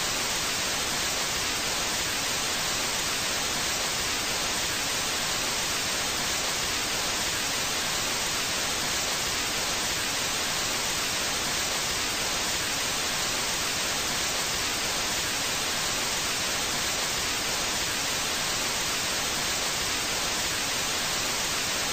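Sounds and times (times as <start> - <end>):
tv static hiss: 0.0 - 21.9.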